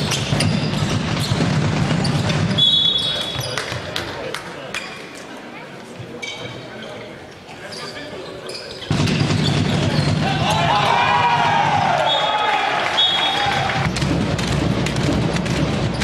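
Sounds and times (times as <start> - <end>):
ball bouncing on court floor: 0.0 - 4.1, 8.9 - 10.6, 13.8 - 16.0
players' voices: 1.4 - 14.0
crowd shouting: 10.0 - 13.9.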